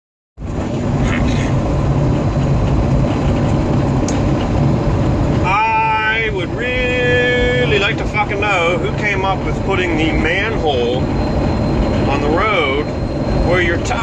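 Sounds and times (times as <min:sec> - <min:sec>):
low hum: 0:00.4 - 0:14.0
truck engine and road noise: 0:00.4 - 0:14.0.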